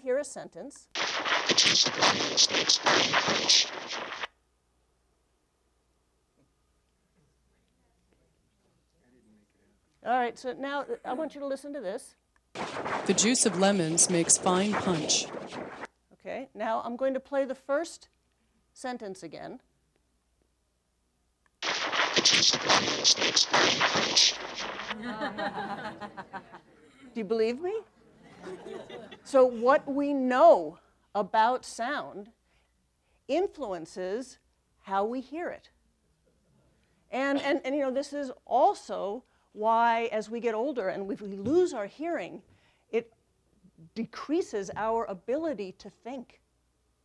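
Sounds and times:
distorted speech over loudspeakers: 13.0 - 15.4.

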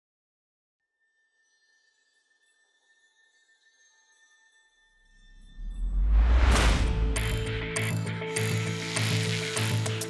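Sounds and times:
low hum: 5.2 - 7.8
low whoosh: 5.3 - 7.7.

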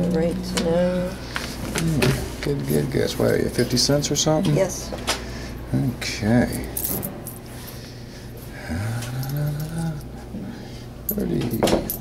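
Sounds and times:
man humming rising pitch: 8.6 - 10.5.

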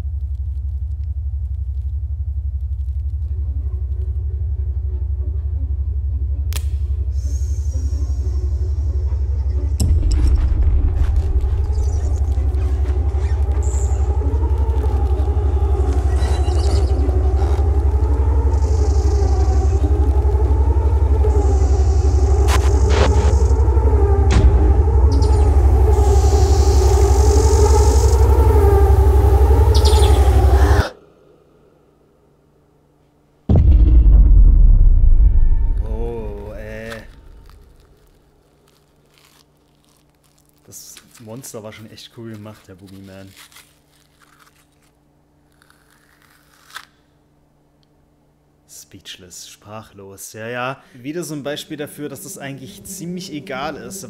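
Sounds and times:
deep rumbling drone: 0.0 - 32.6, 33.5 - 40.4
wavering sustained tones: 11.2 - 32.2, 51.5 - 54.0
glitchy clicks: 22.4 - 23.5.

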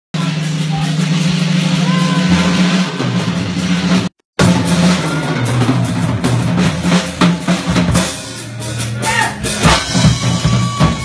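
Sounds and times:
rock band playing loudly: 0.1 - 11.0.

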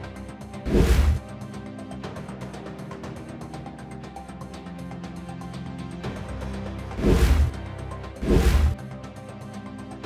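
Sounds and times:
background music: 0.0 - 10.0
whoosh and boom effect: 0.7 - 1.2, 7.0 - 7.5, 8.2 - 8.8.

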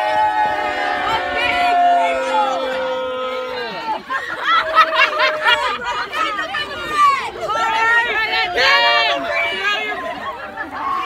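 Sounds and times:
teenagers chattering and calling out: 0.0 - 11.0.

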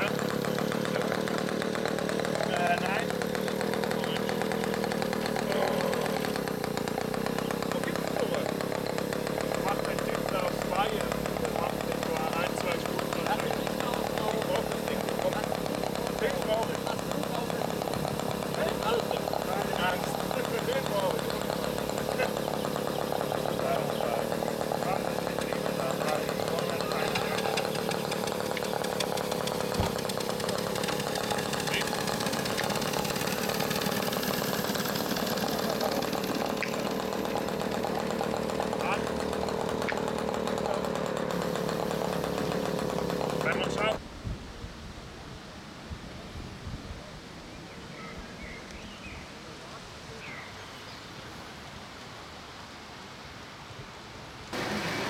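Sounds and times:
small engine buzzing: 0.0 - 44.0, 54.5 - 55.0
outdoor background: 0.0 - 55.0.

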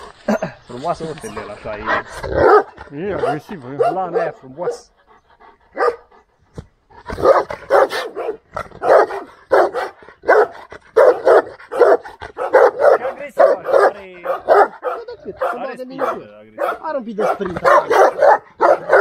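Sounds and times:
dog barking: 2.4 - 4.9, 5.8 - 6.1, 7.1 - 19.0
dog yelping: 7.2 - 19.0.

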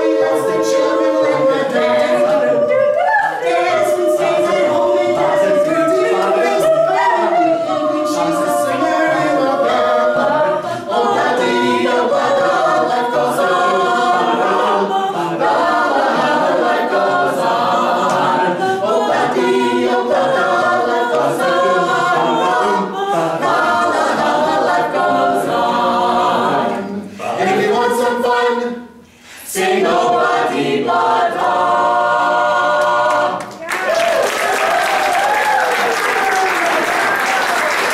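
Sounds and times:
a cappella group singing: 0.0 - 37.9.

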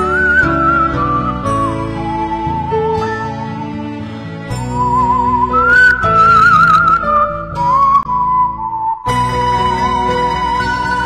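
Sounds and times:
slow sad melody with vibrato: 0.0 - 11.0.

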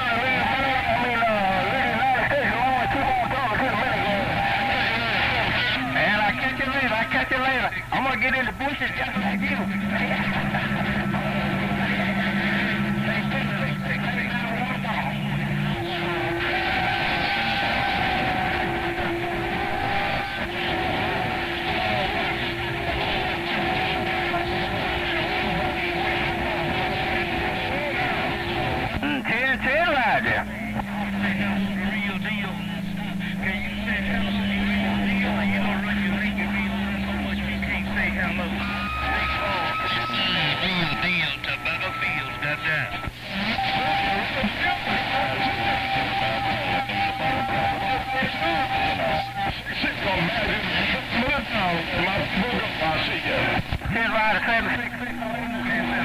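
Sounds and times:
faint garbled radio voices: 0.0 - 56.0
radio band noise hiss: 0.0 - 56.0
radio whistles: 0.0 - 56.0
warbling radio sweep: 0.0 - 56.0.

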